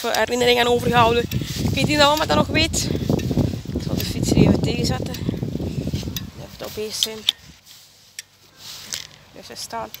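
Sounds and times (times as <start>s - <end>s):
bicycle metallic click: 5.9s - 6.3s.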